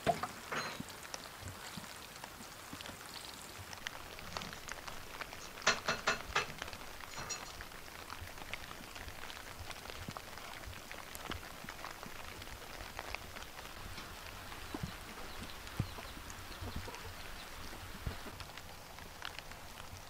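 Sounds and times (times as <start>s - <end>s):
drops ticking on leaves: 0.0s - 20.0s
light rain pattering: 0.0s - 20.0s.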